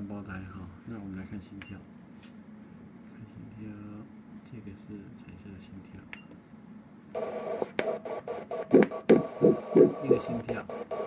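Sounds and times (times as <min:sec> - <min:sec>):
fetal heartbeat whooshing pulses: 0:08.4 - 0:11.0
doppler hiss and clicks: 0:08.7 - 0:10.9.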